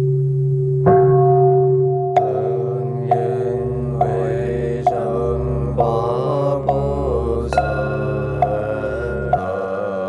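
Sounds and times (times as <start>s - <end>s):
sharp struck beat: 0.9s - 9.8s
steady drone: 2.1s - 10.0s
person chanting: 2.2s - 10.0s.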